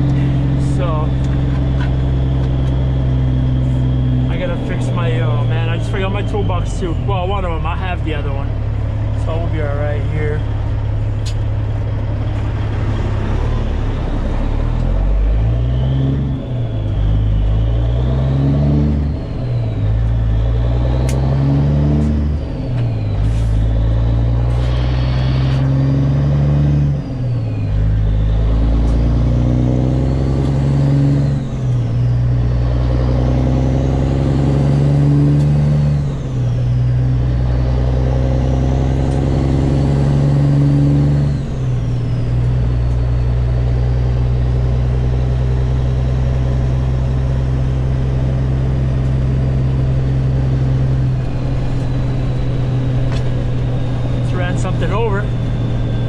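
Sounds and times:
truck diesel engine accelerating: 0:00.0 - 0:56.0.

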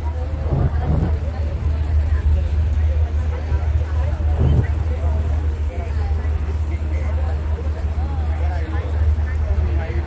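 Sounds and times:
boat engine rumble: 0:00.0 - 0:10.0
people chattering: 0:00.0 - 0:10.0.

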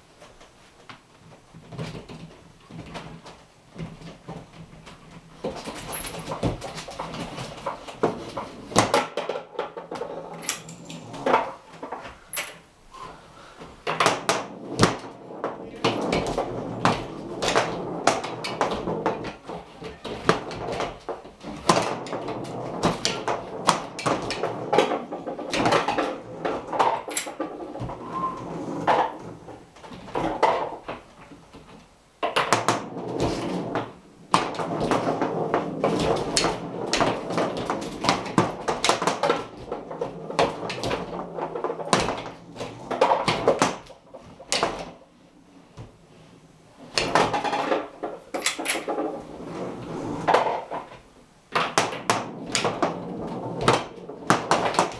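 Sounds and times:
foosball rods sliding and rattling: 0:00.1 - 0:54.9
foosball cracking off plastic men: 0:01.7 - 0:12.6, 0:13.8 - 0:28.0, 0:28.8 - 0:45.0, 0:46.9 - 0:49.5, 0:50.2 - 0:54.9.

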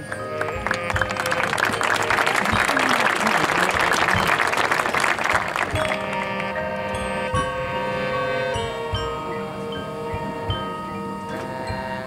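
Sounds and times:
crowd applause: 0:00.0 - 0:08.8
mallet percussion and chimes: 0:00.0 - 0:12.0.

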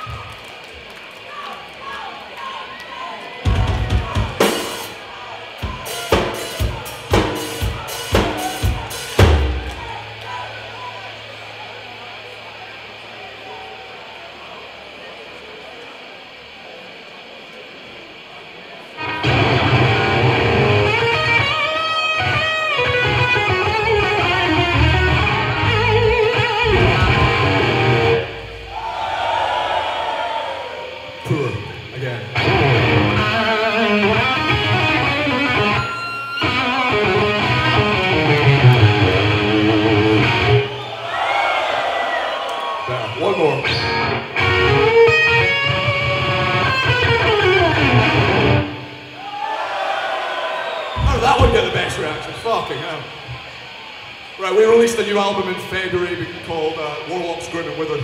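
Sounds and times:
heavy metal band playing live: 0:03.4 - 0:10.2, 0:19.0 - 0:29.0, 0:31.8 - 0:40.8, 0:43.6 - 0:49.0
steady hum: 0:04.1 - 0:58.0
guitar squeal: 0:19.0 - 0:29.0, 0:31.0 - 0:41.0, 0:42.9 - 0:49.3.

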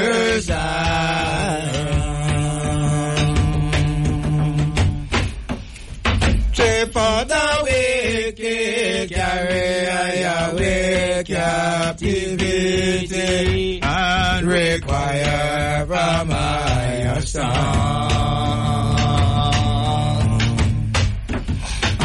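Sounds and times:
music with chanted vocal: 0:00.0 - 0:22.0.

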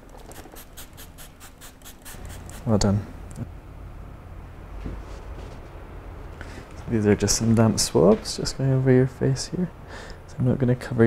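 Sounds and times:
spray bottle squirting: 0:00.2 - 0:02.7.

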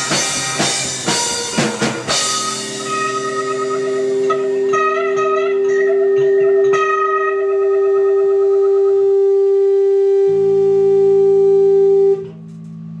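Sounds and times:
faint amplifier ring: 0:00.0 - 0:13.0
sustained guitar chord: 0:02.1 - 0:13.0
low bass note: 0:09.0 - 0:13.0.

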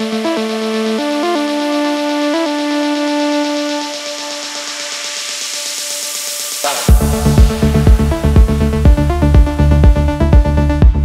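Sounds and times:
held synthesizer chord: 0:00.0 - 0:10.8
noise sweep: 0:02.5 - 0:09.8.

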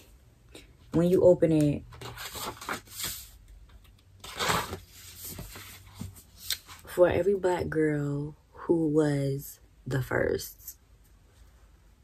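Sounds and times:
book pages rustling: 0:01.0 - 0:06.9.

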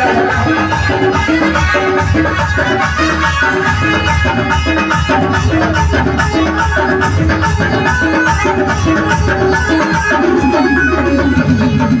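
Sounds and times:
loud dance music: 0:00.0 - 0:12.0.

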